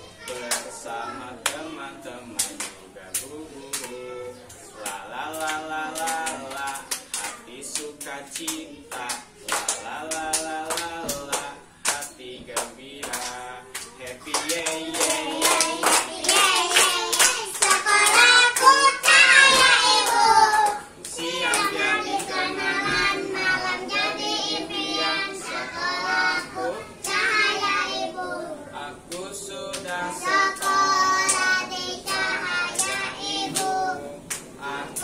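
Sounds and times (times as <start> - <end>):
children and teacher singing: 0.0 - 35.0.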